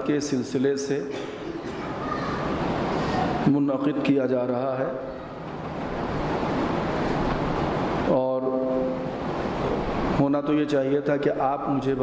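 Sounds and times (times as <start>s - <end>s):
man speaking over a microphone: 0.0s - 1.2s, 3.4s - 5.0s, 8.1s - 9.1s, 10.2s - 12.0s
steady rushing background noise: 0.0s - 12.0s.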